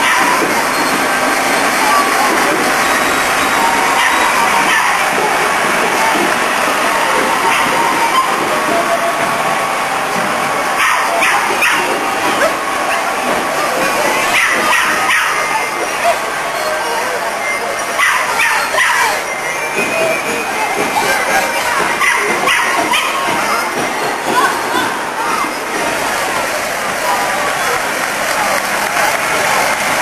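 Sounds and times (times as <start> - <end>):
crowd voices din: 0.0 - 30.0.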